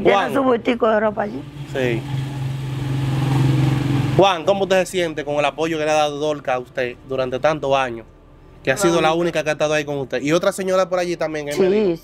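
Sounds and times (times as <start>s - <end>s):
engine humming: 1.1s - 10.4s.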